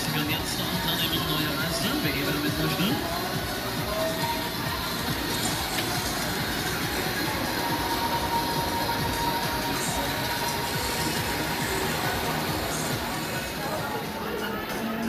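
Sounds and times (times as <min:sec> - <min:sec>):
fairground music: 0:00.0 - 0:15.0
mechanical rumble of rides: 0:00.0 - 0:15.0.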